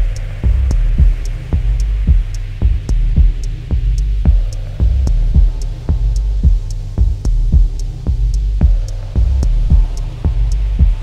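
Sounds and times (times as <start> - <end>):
deep bass drone: 0.0 - 11.0
four-on-the-floor kick drum: 0.0 - 11.0
hi-hat ticks: 0.0 - 11.0.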